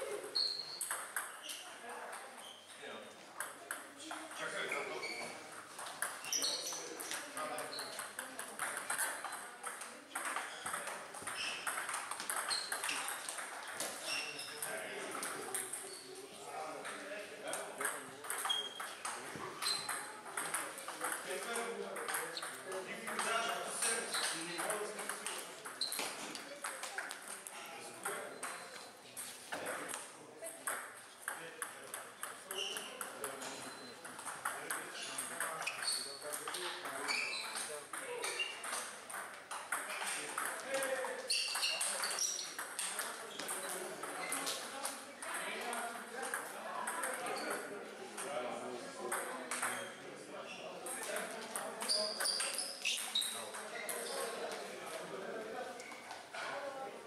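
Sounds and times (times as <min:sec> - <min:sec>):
table tennis ball ticks and pings: 0:00.4 - 0:01.6, 0:05.9 - 0:15.9, 0:17.5 - 0:26.9, 0:30.7 - 0:44.6, 0:51.1 - 0:54.0.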